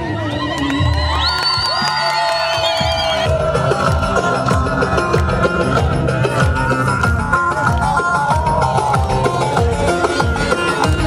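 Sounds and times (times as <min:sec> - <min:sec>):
drum beat: 0:02.6 - 0:11.0.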